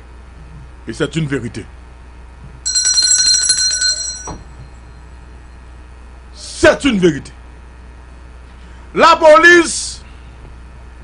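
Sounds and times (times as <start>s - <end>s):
low room hum: 0.0s - 11.0s
electronic ring with trill: 2.6s - 5.6s.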